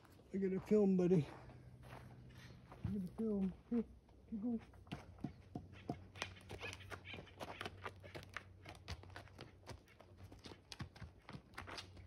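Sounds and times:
donkey hooves on dirt: 0:00.0 - 0:12.0.

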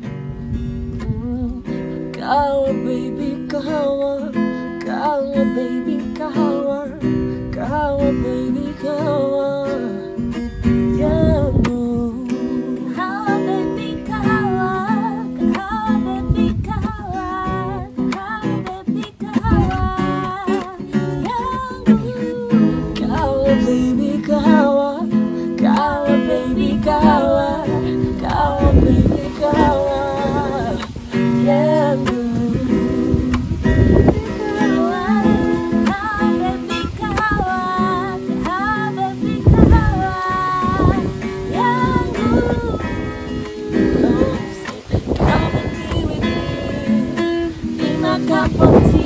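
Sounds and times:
acoustic guitar strumming chords: 0:00.0 - 0:49.0
man and woman singing: 0:01.0 - 0:49.0.

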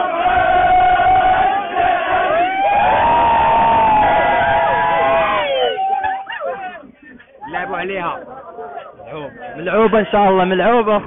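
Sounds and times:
crowd chanting: 0:00.0 - 0:10.7.

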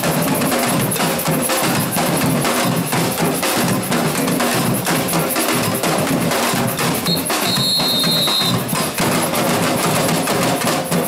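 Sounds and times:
samba percussion group drumming: 0:00.0 - 0:11.0
high steady tone: 0:07.1 - 0:08.7.

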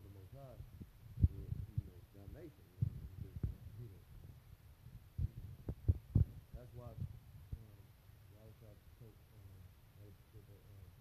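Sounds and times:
dull low thumps: 0:00.0 - 0:07.8
faint murmured voice: 0:05.2 - 0:11.0.

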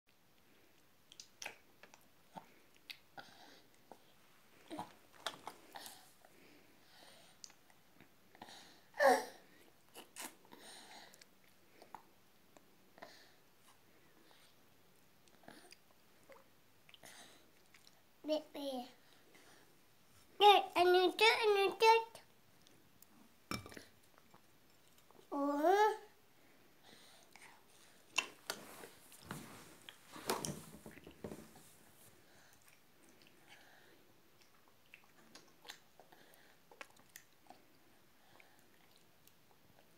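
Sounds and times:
soft breathy sounds: 0:00.3 - 0:20.4, 0:25.0 - 0:39.9
toddler chewing with lip smacks: 0:00.4 - 0:06.3, 0:07.2 - 0:08.4, 0:15.2 - 0:18.1, 0:27.1 - 0:29.2, 0:32.3 - 0:39.9.

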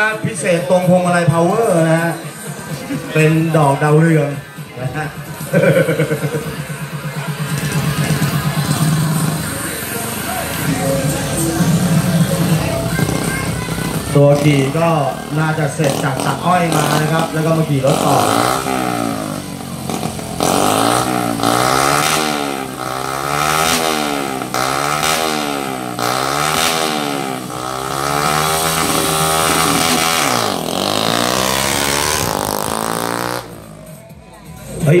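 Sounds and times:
motorcycle engine revving: 0:00.0 - 0:34.2.

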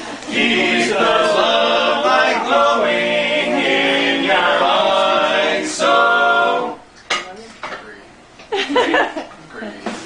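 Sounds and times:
barbershop quartet singing: 0:00.0 - 0:06.9.

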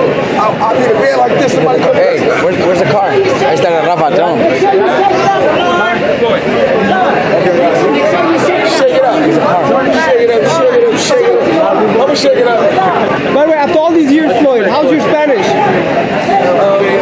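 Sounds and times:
men talking over one another: 0:00.0 - 0:17.0.

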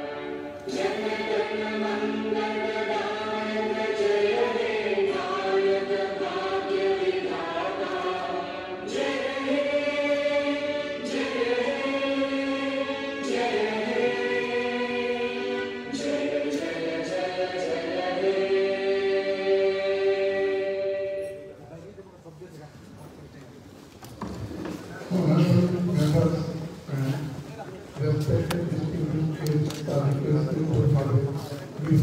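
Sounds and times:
choir singing anthem: 0:00.0 - 0:21.5.

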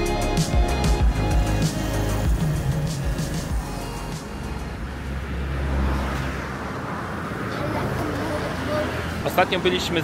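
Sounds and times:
music: 0:00.0 - 0:05.1
road traffic: 0:00.0 - 0:10.0
vehicle passing: 0:01.4 - 0:10.0.

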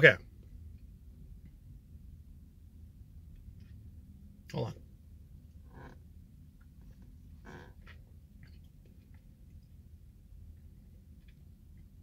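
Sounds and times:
low steady hum: 0:00.0 - 0:12.0
soft gulps: 0:05.7 - 0:12.0.

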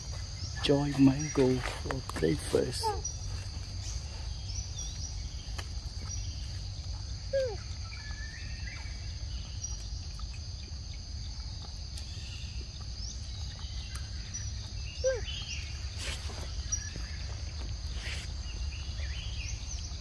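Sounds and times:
insects calling: 0:00.0 - 0:20.0.

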